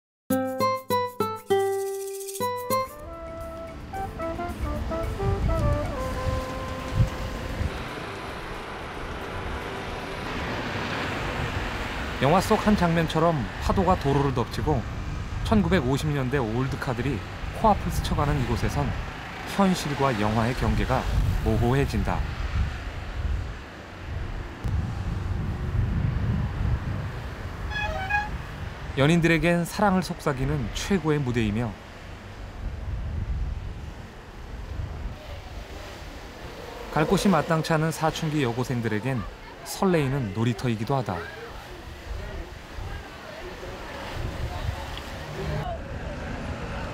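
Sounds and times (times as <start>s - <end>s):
short melodic music phrase: 0.3s - 8.1s
road traffic rumble: 2.9s - 46.9s
heavy wave thuds: 3.1s - 8.3s
ocean waves breaking on rocks: 5.8s - 22.8s, 33.7s - 46.8s.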